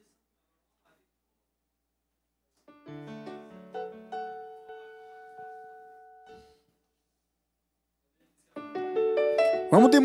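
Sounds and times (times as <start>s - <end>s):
keyboard playing piano chords: 2.7s - 6.6s, 8.6s - 10.0s.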